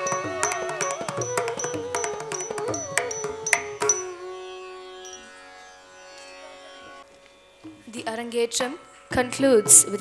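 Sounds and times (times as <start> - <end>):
string drone with overtones: 0.0 - 10.0.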